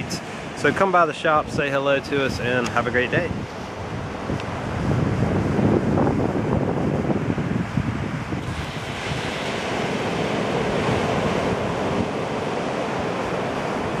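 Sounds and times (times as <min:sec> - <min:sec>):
small waves breaking on shore: 0:00.0 - 0:14.0
wind rumble on microphone: 0:00.0 - 0:14.0.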